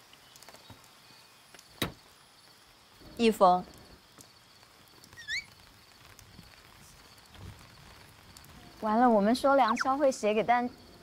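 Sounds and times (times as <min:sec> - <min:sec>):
light rain pattering: 0:00.0 - 0:11.0
high insect trill: 0:00.2 - 0:11.0.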